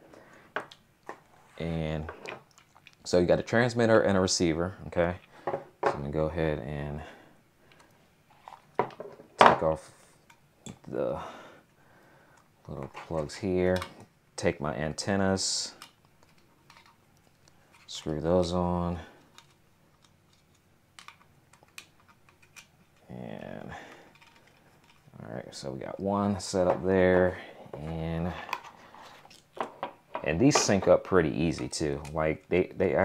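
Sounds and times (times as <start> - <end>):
hands handling plastic device: 15.8 - 18.4, 19.2 - 25.2, 26.6 - 31.0.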